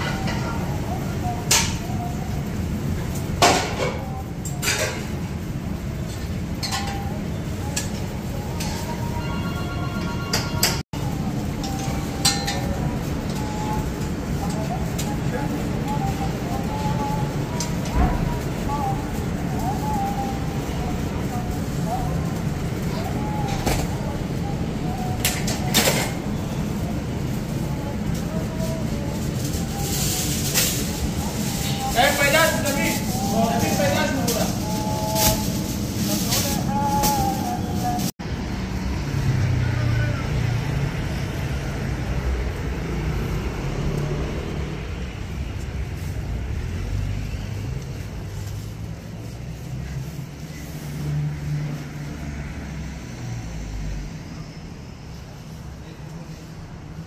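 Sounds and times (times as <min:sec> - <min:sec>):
street traffic rumble: 0:00.0 - 0:57.0
metal skewers clinking: 0:06.2 - 0:10.8, 0:11.5 - 0:13.8
background voices: 0:10.6 - 0:38.2.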